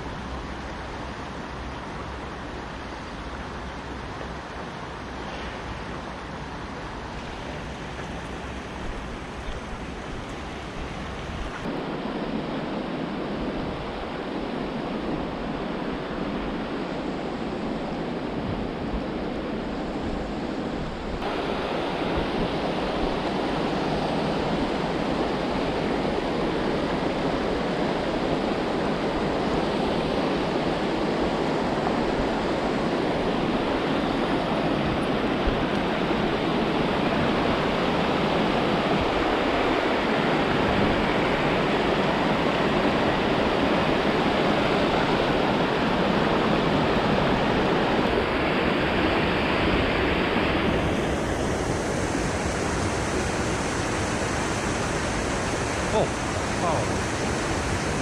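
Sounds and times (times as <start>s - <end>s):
mountain stream rushing: 0.0s - 58.0s.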